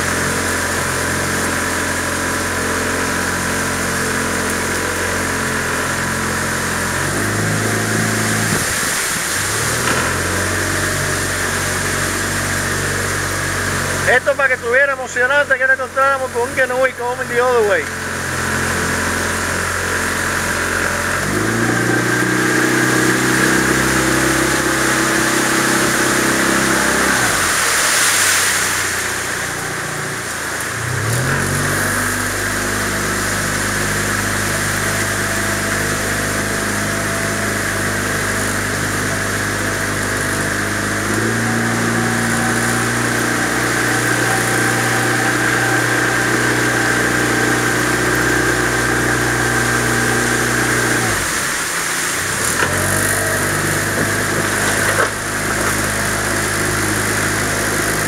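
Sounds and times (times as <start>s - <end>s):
small outboard motor: 0.0s - 58.0s.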